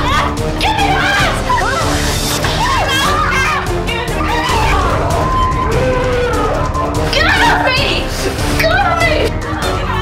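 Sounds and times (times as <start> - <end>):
women shrieking and yelling: 0.0 - 7.8
background music with held chords: 0.0 - 10.0.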